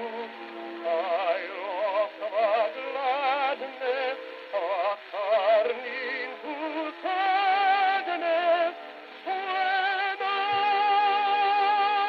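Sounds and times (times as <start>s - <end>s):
old gramophone record music: 0.0s - 12.0s.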